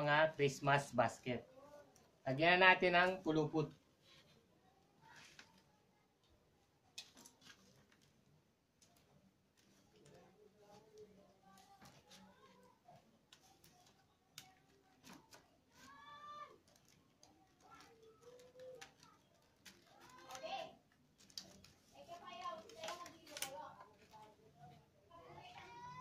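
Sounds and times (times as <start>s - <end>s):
rattan cane clicks and rustles: 6.9s - 26.0s.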